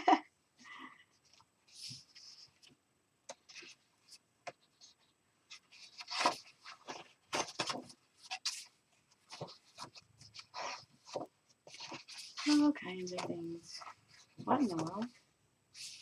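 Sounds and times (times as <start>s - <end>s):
paper rustling: 1.2s - 2.7s, 3.3s - 15.2s, 15.8s - 16.0s
pages turning: 3.3s - 15.2s.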